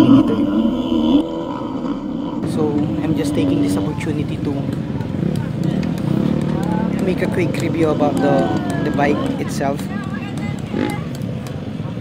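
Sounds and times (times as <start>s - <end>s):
person's voice: 0.0s - 1.2s
dirt bike engines running: 0.0s - 12.0s.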